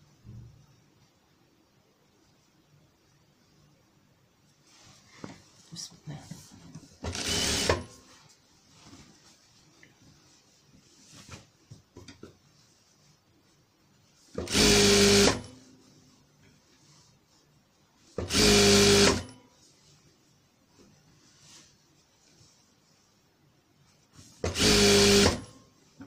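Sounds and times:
fabric being handled: 4.3 - 7.1, 7.9 - 14.4, 15.6 - 18.2, 19.4 - 24.5
electric sewing machine stitching: 7.0 - 7.9, 14.4 - 15.5, 18.2 - 19.3, 24.5 - 25.5.

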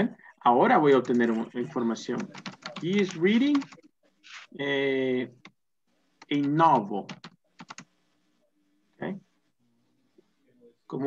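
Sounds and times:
typing on computer keyboard: 0.9 - 1.4, 2.2 - 3.9, 6.2 - 7.9.

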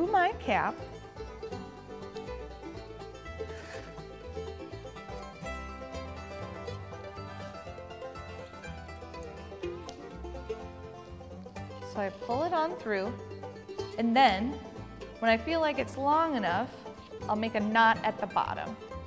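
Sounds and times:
plucked-string tune: 0.0 - 19.0.

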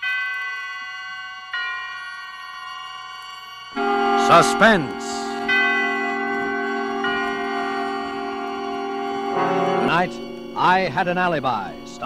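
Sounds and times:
bell-like chime ringing: 0.0 - 12.0.

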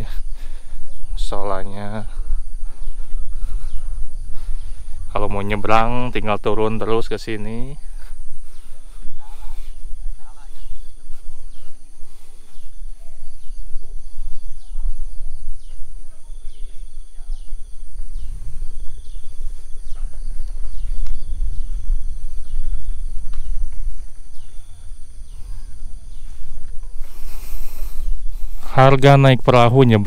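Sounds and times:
high insect drone: 0.0 - 30.0
wind rumbling on microphone: 0.0 - 30.0.

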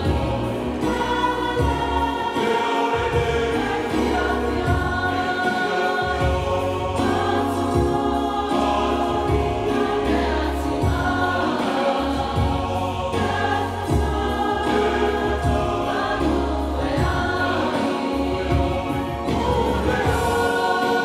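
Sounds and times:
choir singing a hymn: 0.0 - 21.0
electronic keyboard chords: 0.0 - 21.0.

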